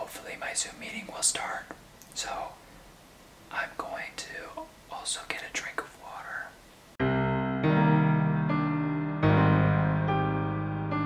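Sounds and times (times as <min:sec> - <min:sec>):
man whispering: 0:00.0 - 0:02.6, 0:03.5 - 0:06.6.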